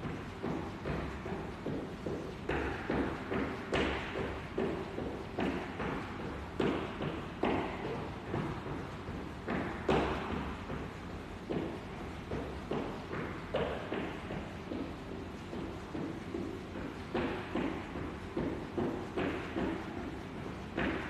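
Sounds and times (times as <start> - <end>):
jump rope landing thuds: 0.0 - 21.0
jump rope slapping floor: 0.0 - 21.0.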